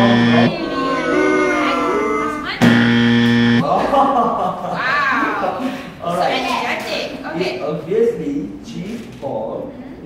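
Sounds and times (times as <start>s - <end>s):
low wrong-answer buzzer: 0.0s - 0.5s, 2.6s - 3.6s.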